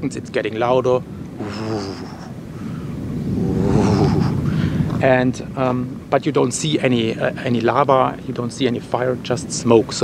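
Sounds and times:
volcano rumbling: 1.0s - 6.1s
man sighing: 1.4s - 2.8s, 3.4s - 4.9s.

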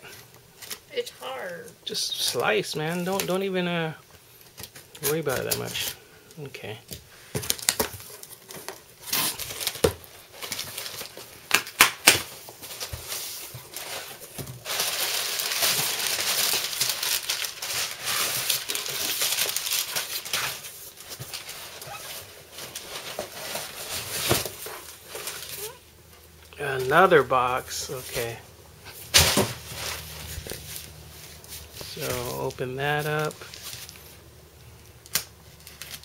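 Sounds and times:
packing paper crumpling: 7.4s - 25.8s, 27.8s - 36.0s.

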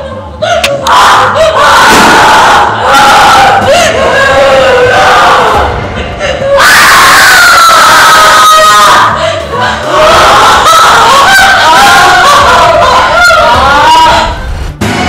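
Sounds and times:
woman screaming: 0.8s - 5.6s, 6.4s - 14.4s.

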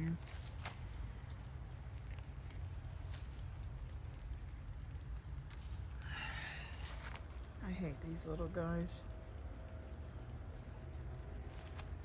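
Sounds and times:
low steady rumble: 0.0s - 12.0s
rustling of leaves: 0.0s - 12.0s.

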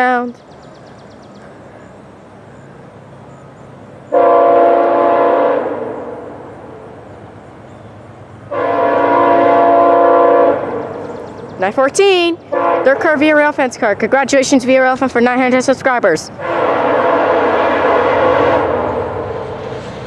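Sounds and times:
train air horn blasts: 4.1s - 6.4s, 8.5s - 11.0s, 12.5s - 13.3s, 16.4s - 19.6s.

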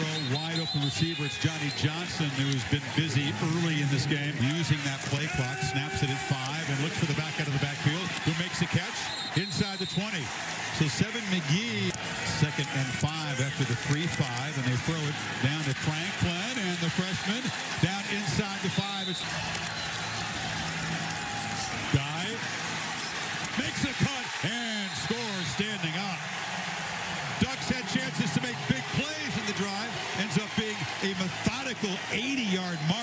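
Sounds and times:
commentator talking: 0.0s - 19.2s, 23.5s - 26.2s, 27.4s - 33.0s
stadium crowd noise: 0.0s - 33.0s.

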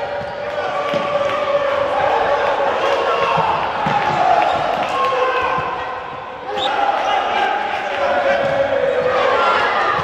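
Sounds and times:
crowd voices and shouting: 0.0s - 10.0s.

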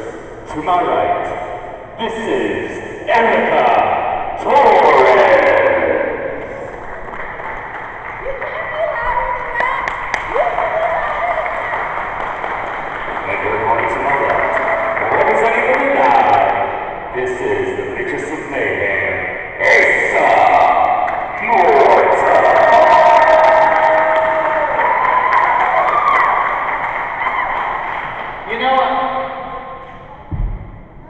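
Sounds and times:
man speaking over public address: 0.0s - 6.2s, 13.2s - 22.8s, 28.4s - 29.3s
echoing voice over pa: 15.2s - 22.6s.

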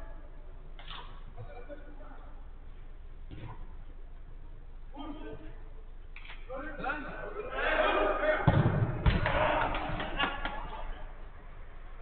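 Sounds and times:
players shouting: 7.4s - 11.0s
football thud: 8.4s - 9.6s.

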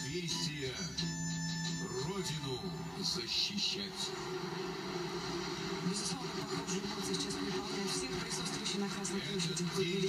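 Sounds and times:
television voices and crowd noise: 0.0s - 10.0s.

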